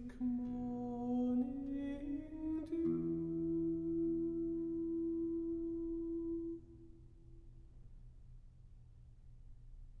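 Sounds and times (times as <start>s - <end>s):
lute chord ringing: 0.0s - 7.5s.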